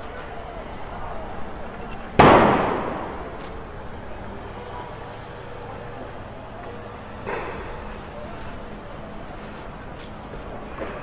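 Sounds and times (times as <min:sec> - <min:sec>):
loud bang: 0:02.2 - 0:03.6.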